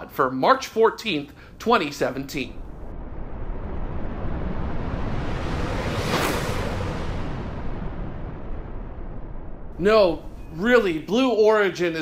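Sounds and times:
deep steady rumble: 1.4 - 11.4
whoosh: 2.3 - 11.1.

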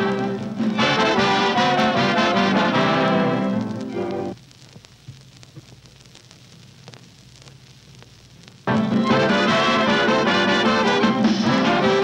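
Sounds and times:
swing orchestra with brass: 0.0 - 4.3, 8.7 - 12.0
old recording crackle: 0.0 - 12.0.

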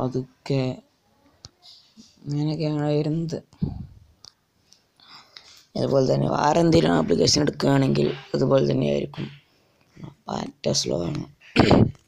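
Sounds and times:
person's voice: 0.0 - 0.9, 2.1 - 4.1, 5.7 - 9.4, 10.0 - 12.0.

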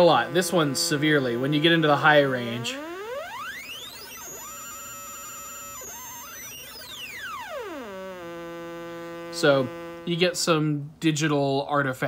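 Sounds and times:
sliding aliasing tones: 0.0 - 10.2
synthesizer oscillator pitch sweep: 0.0 - 10.2.

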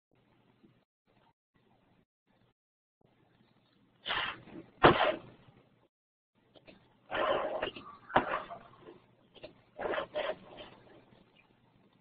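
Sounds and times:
brief scraping noises: 4.0 - 5.3, 7.1 - 8.7.

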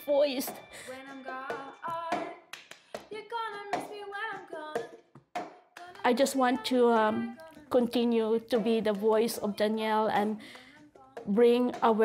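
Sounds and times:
woman singing: 0.0 - 5.0, 5.8 - 12.0
rhythmic hand claps: 0.4 - 12.0.

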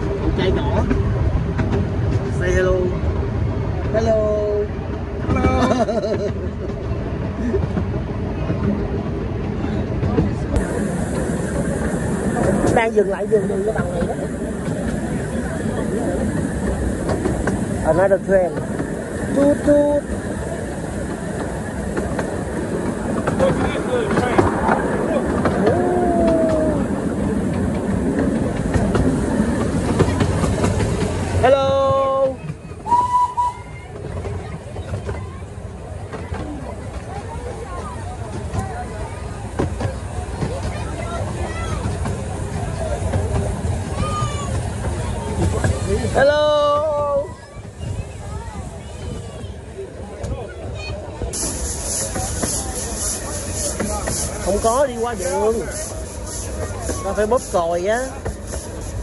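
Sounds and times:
miniature train carriages rumbling: 0.0 - 59.0.

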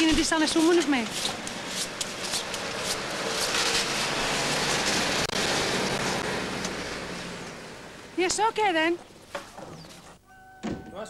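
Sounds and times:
rushing outdoor noise: 0.0 - 10.2.

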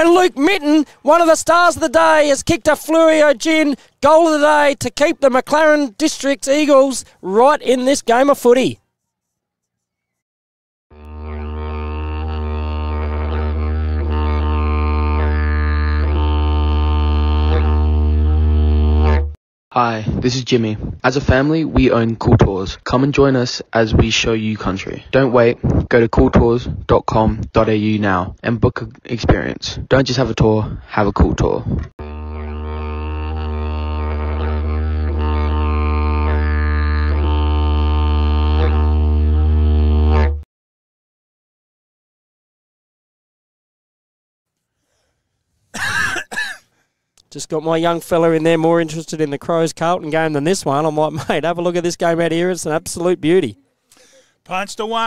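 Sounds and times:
didgeridoo drone: 11.0 - 19.4, 32.0 - 40.4.

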